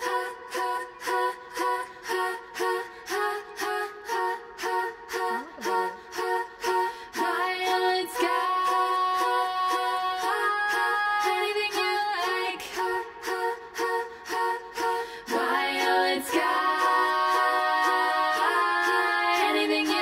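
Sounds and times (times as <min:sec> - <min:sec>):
female vocal harmony chords: 0:00.0 - 0:20.0.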